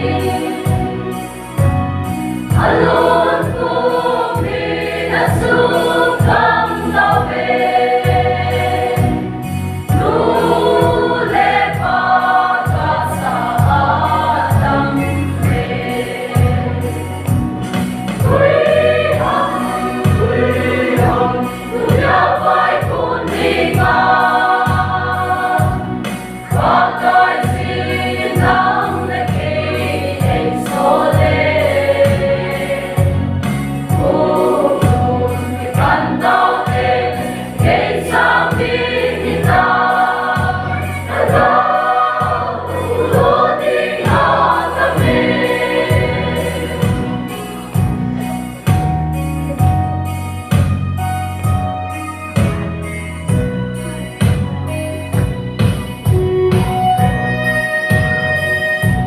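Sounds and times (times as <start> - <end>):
choir singing in harmony: 0.0 - 48.5.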